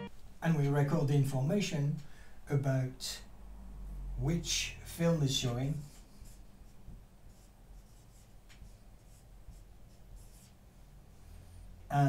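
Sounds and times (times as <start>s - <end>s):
marker pen scratching on whiteboard: 5.8s - 10.9s.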